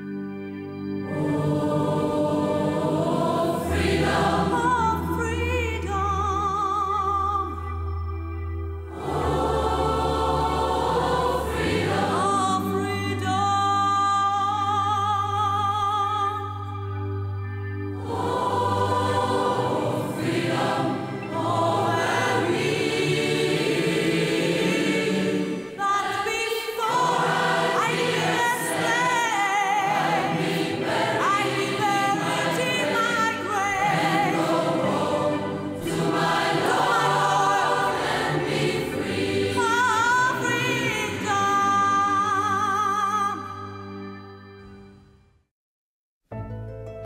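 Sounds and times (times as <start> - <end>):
choir singing: 0.0 - 6.9, 8.8 - 13.8, 17.9 - 43.5.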